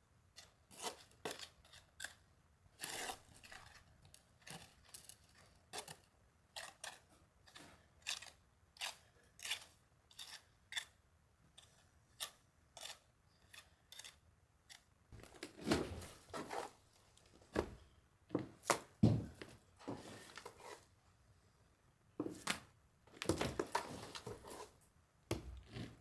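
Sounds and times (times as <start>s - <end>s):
trowel scraping mortar: 0.4s - 2.2s, 2.8s - 11.0s, 11.6s - 14.8s, 16.3s - 16.8s, 20.0s - 20.9s, 23.7s - 24.8s.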